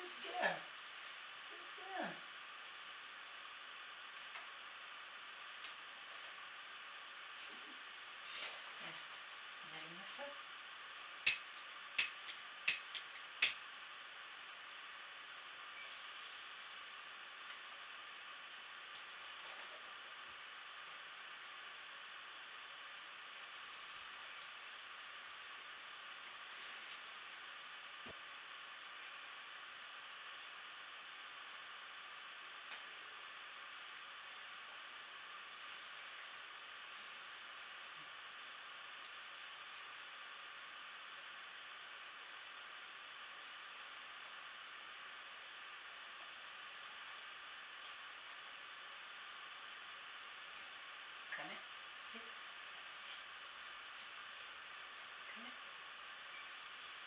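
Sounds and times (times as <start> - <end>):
room tone hiss: 0.0 - 57.0.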